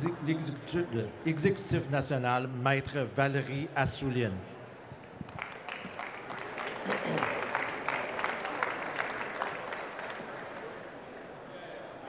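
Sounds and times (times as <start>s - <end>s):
audience applause: 5.3s - 11.1s.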